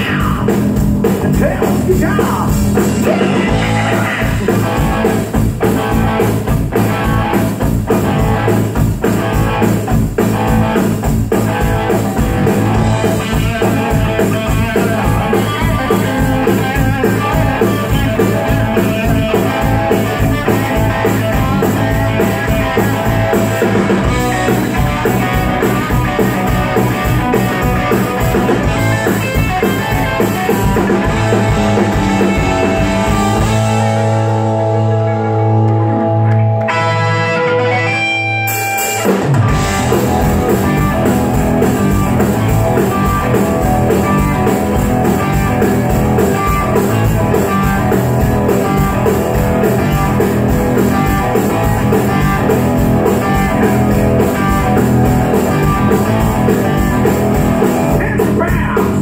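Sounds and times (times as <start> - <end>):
bass guitar: 0.0 - 59.0
drum kit: 0.0 - 59.0
electric guitars: 0.0 - 59.0.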